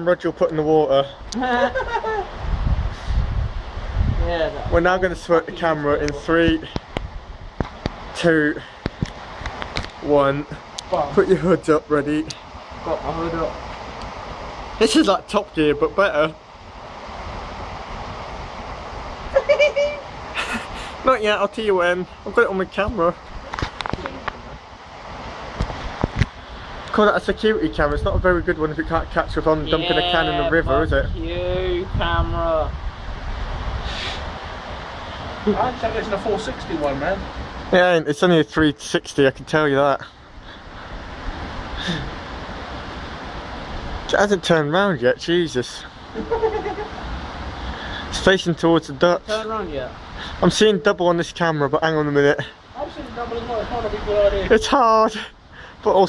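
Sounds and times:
short wavering laugh: 1.4 - 2.4, 19.3 - 21.0, 46.1 - 47.0.

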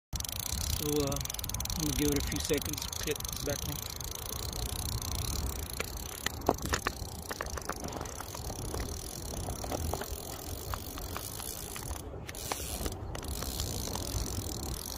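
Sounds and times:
fishing reel drag clicking: 0.2 - 14.9.

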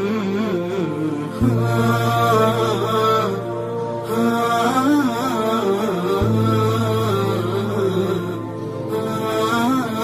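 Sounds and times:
chanted melodic vocals: 0.0 - 10.0
steady low drone: 0.0 - 10.0.

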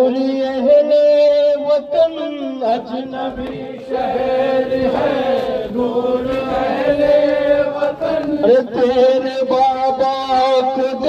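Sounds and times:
voices chanting a lament: 0.0 - 11.0.

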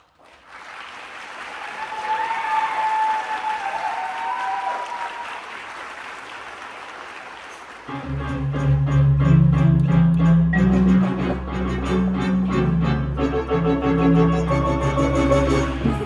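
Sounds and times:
audience applauding: 0.0 - 8.0
audience cheering: 0.5 - 7.6.

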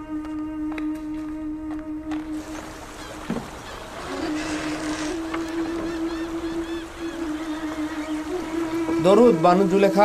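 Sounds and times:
water moving: 0.0 - 10.0.

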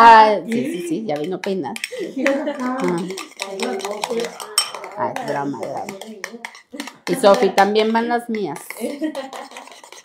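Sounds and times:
woman speaking: 0.0 - 9.1
utensil clinking in ceramic bowl: 0.5 - 8.0.

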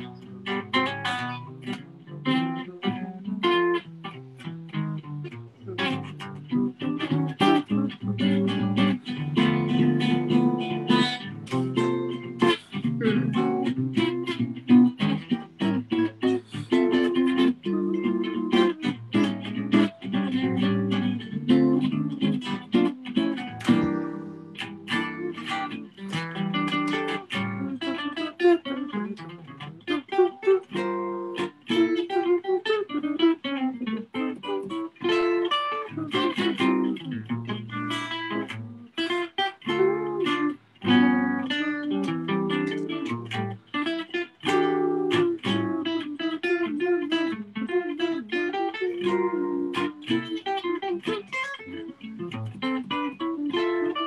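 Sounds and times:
solo jazz guitar: 0.0 - 54.0.

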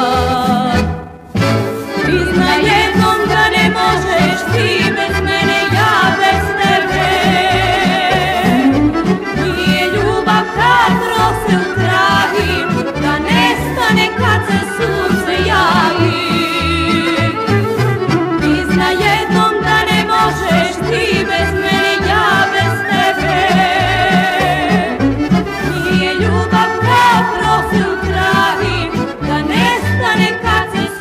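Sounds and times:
folk band music: 0.0 - 31.0.

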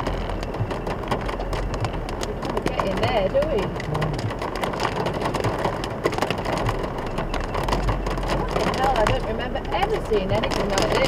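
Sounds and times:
car engine hum: 0.0 - 11.0
heavy rain on car roof: 0.0 - 11.0.

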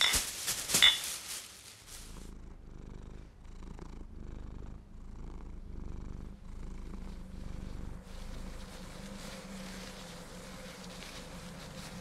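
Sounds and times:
cat purring: 1.9 - 12.0.

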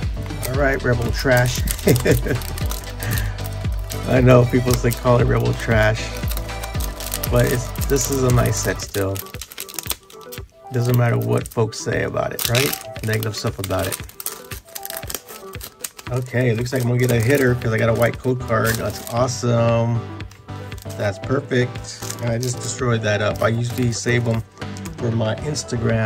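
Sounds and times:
foil pack crinkling and tearing: 0.0 - 19.4, 20.2 - 25.1
background music: 0.0 - 26.0.

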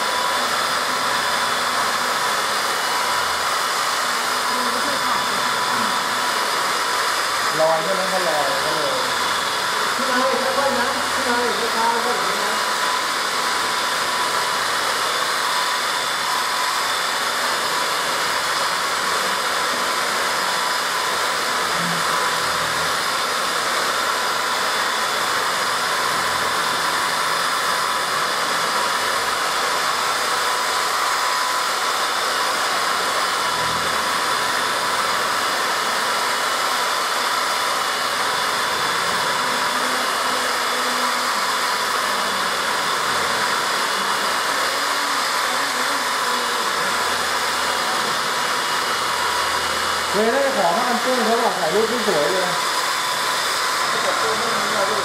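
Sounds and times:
electric car polishers whining: 0.0 - 55.0.

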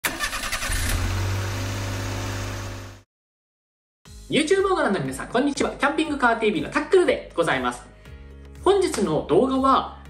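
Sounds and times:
car engine starting: 0.0 - 3.0.

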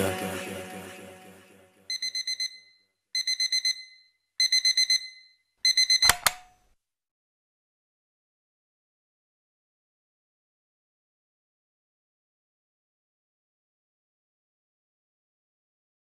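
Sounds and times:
music: 0.0 - 1.9
digital alarm clock beeping: 1.9 - 6.5
sharp click: 6.0 - 6.6.

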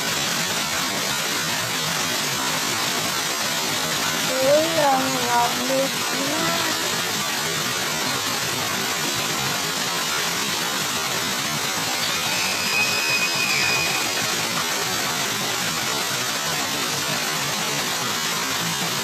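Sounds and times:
fountain jets splashing: 0.0 - 19.0
faint high whistle-like tone: 12.0 - 14.3.

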